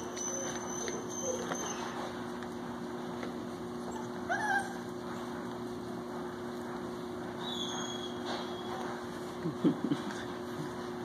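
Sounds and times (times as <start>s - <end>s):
puppy yelp: 0.0s - 2.1s, 3.8s - 4.9s, 7.4s - 8.8s
high puppy whine: 0.0s - 2.6s, 3.6s - 5.6s, 6.5s - 11.0s
steady low hum: 0.0s - 11.0s.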